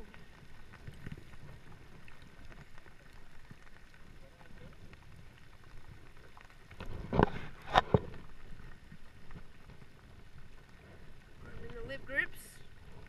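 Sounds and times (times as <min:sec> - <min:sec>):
rain falling on water: 0:00.0 - 0:13.0.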